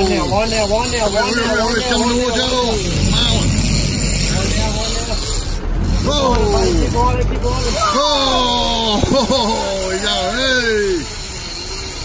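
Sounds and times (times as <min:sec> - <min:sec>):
faint voices: 0:00.0 - 0:09.0
boat engine rumble: 0:00.0 - 0:11.3
wind: 0:00.0 - 0:12.0
sea noise: 0:02.4 - 0:07.0.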